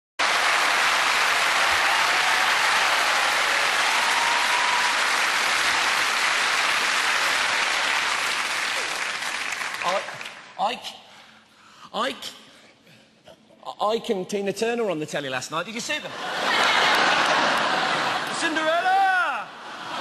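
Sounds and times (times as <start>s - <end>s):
audience applauding: 0.2s - 10.6s, 16.4s - 19.0s.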